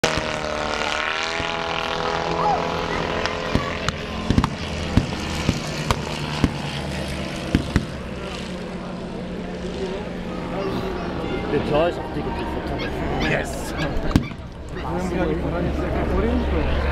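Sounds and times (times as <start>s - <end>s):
propeller aircraft engine droning: 0.0s - 16.9s
sharp cracks: 3.1s - 8.1s.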